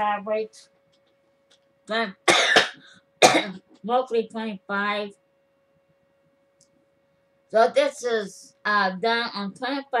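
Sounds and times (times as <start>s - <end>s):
woman coughing: 2.2s - 3.8s.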